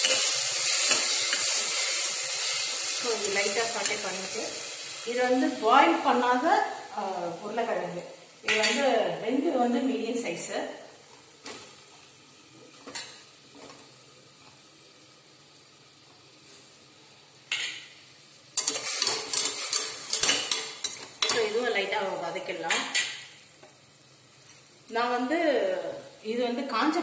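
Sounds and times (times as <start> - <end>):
metal spoon scraping in a pot: 0.0 - 4.0, 18.6 - 21.6.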